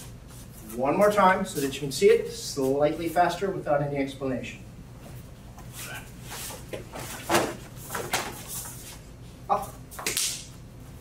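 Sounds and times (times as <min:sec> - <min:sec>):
fabric snaps and slaps: 0:10.0 - 0:10.5.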